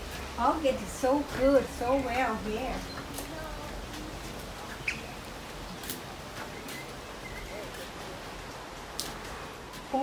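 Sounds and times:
faint outdoor background: 0.0 - 10.0
high bird chirp: 4.7 - 5.2.

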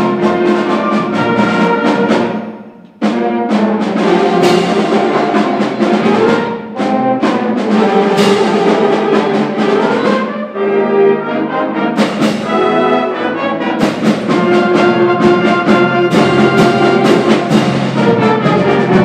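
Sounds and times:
snare drum strikes: 0.0 - 10.1, 12.0 - 12.8, 13.8 - 19.0
concert band playing: 0.0 - 19.0.

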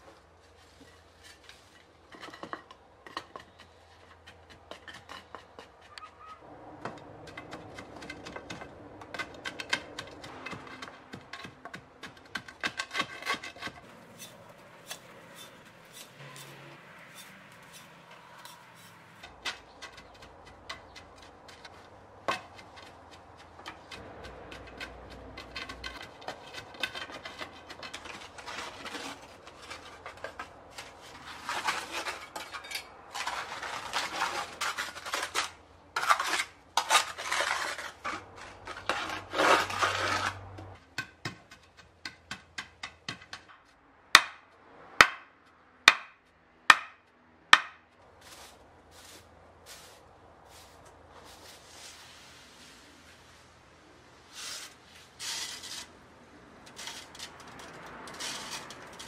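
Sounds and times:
trowel scraping soil on tiles: 0.0 - 6.4, 7.3 - 42.5, 48.2 - 53.4, 54.0 - 59.0.

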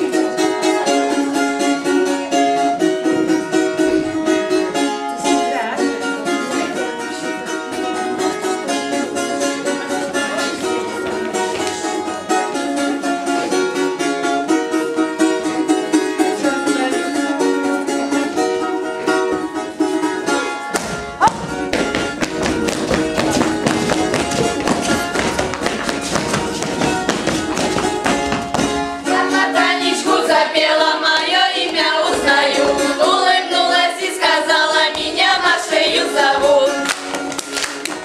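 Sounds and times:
voices singing: 29.0 - 36.9.

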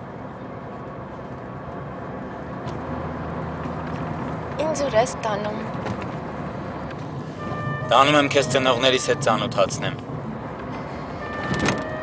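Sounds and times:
road and engine noise in car: 0.0 - 12.0
held music notes: 7.4 - 10.0.

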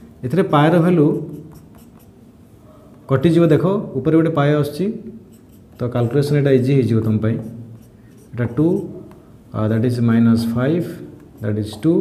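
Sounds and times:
marker writing on whiteboard: 1.1 - 2.2, 5.3 - 6.4, 7.3 - 9.3, 10.8 - 12.0.

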